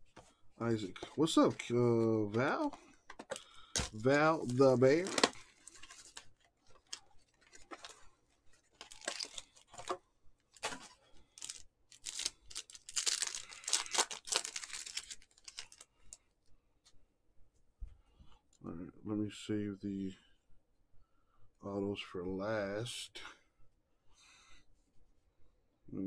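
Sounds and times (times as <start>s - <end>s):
foil wrapper tearing and crinkling: 3.8s - 6.2s, 8.8s - 9.6s, 11.4s - 15.9s.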